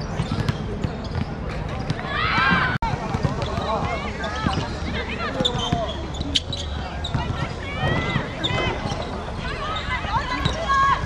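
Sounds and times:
women shouting and calling: 9.4 - 11.0.

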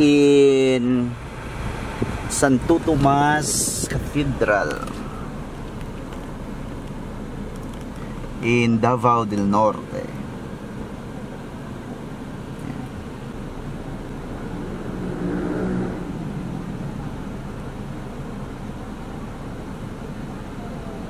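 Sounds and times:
car engine idling: 0.0 - 21.0
faint muffled voices: 18.4 - 21.0.

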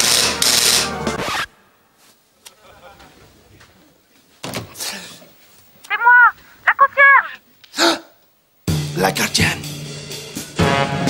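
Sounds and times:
door intercom buzzing: 5.9 - 7.4.

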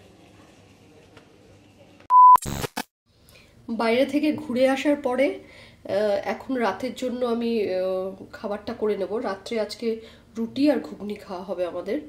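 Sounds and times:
loud electronic beep: 2.1 - 2.8.

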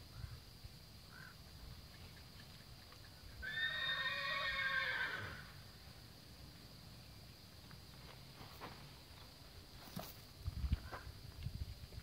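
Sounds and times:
horse whinnying: 3.4 - 5.6.

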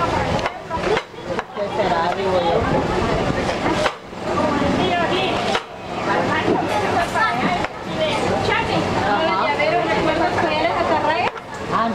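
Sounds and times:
indistinct background voices: 0.0 - 11.9.

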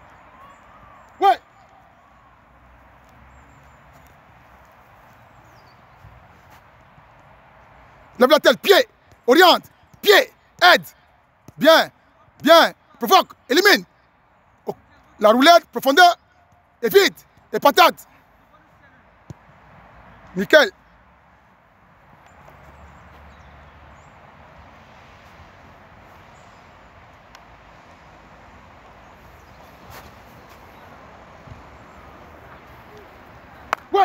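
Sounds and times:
outdoor background noise: 0.0 - 34.0.

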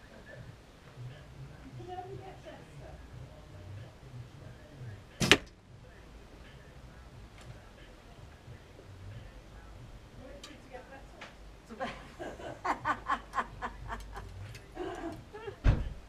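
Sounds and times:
single thump: 5.2 - 5.5
woman laughing: 11.7 - 15.7.

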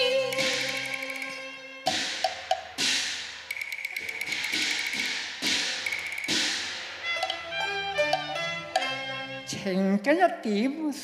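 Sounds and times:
woodblock clicks: 0.2 - 2.7, 3.4 - 6.6, 7.2 - 7.4, 8.0 - 8.9
cymbal crash: 4.5 - 7.2.

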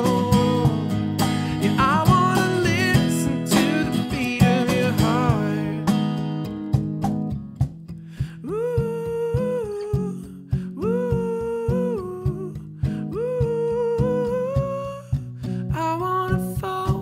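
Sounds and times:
man singing wordlessly: 0.0 - 6.1, 8.3 - 17.0
strummed acoustic guitar: 0.0 - 17.0.

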